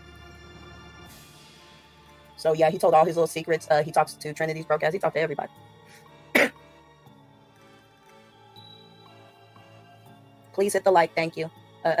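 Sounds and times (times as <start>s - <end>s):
soft background music: 0.0s - 12.0s
woman coughing: 6.3s - 6.6s.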